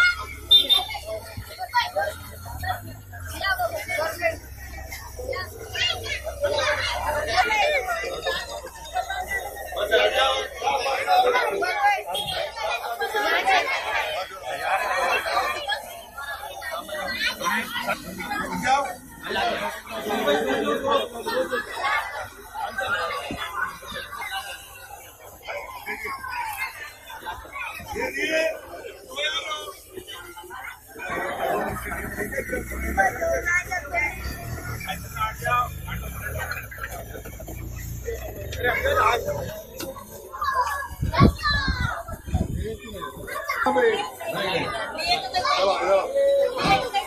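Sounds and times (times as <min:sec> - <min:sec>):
children shouting: 0:00.0 - 0:47.0
overlapping crowd chatter: 0:00.0 - 0:47.0.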